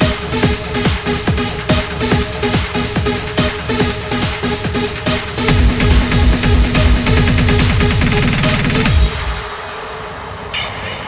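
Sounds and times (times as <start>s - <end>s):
kick drum and bassline: 0.0s - 10.2s
reverberating noisy wash: 0.0s - 11.0s.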